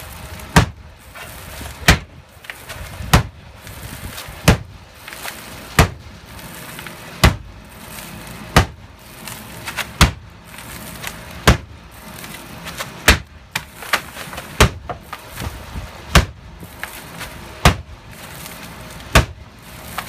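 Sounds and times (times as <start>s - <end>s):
sledgehammer striking wooden window: 0.5s - 0.8s, 1.8s - 3.4s, 4.4s - 4.8s, 5.8s - 6.1s, 7.2s - 7.5s, 8.5s - 8.8s, 9.6s - 10.3s, 11.4s - 11.8s, 12.7s - 15.5s, 16.1s - 16.4s, 17.6s - 18.0s, 19.1s - 19.4s.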